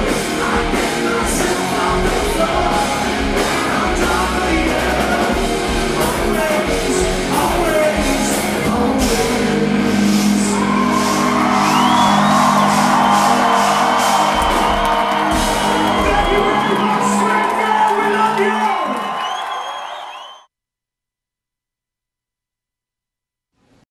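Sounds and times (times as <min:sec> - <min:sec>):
hard rock band playing live: 0:00.0 - 0:17.2
audience whooping and shouting: 0:10.1 - 0:20.4.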